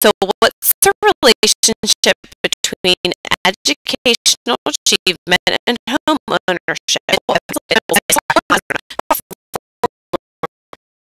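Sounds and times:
glitching chopped voice: 5.1 - 11.0.

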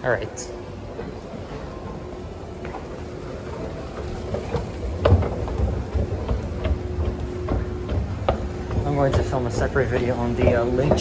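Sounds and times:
escalator hum: 0.0 - 11.0
footsteps: 0.7 - 11.0.

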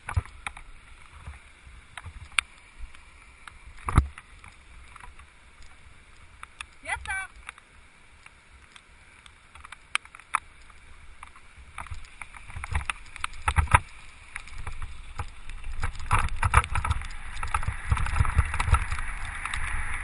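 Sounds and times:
wheels crunching over gravel: 0.0 - 20.0.

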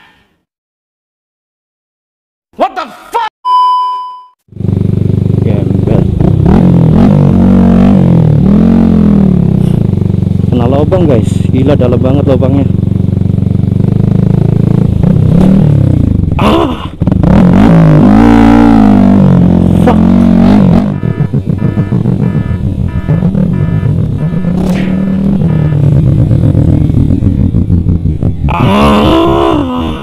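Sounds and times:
motorcycle engine running: 4.5 - 29.7.

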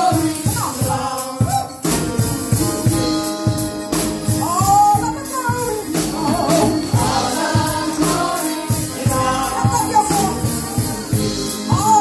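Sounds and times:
gospel choir singing with band: 0.0 - 12.0
tambourine-like shaking: 0.0 - 12.0.

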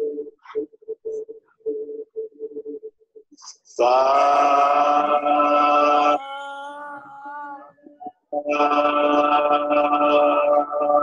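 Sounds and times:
sustained pitched tones: 3.7 - 11.0.

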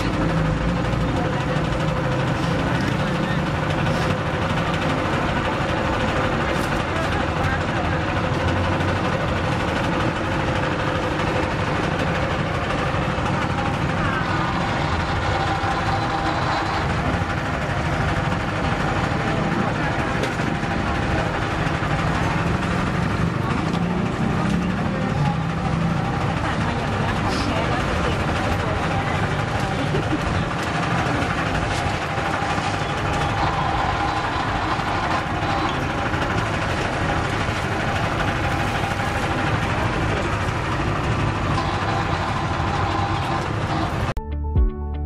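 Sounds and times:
crowd chatter: 0.0 - 44.1.

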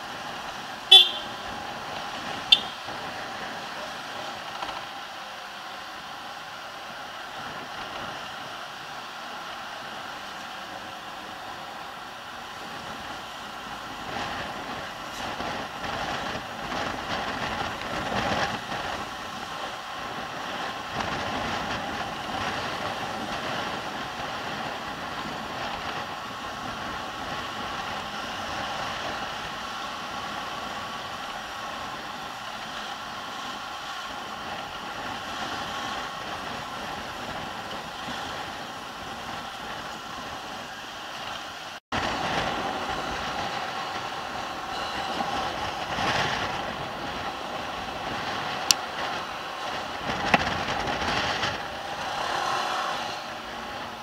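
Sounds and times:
scooter engine running: 0.0 - 41.1
road and wind noise: 0.0 - 54.0.

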